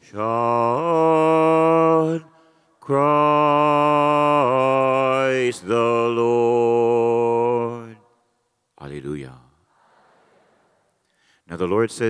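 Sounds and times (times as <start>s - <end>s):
man chanting: 0.0s - 8.1s, 8.8s - 9.6s, 11.5s - 12.0s.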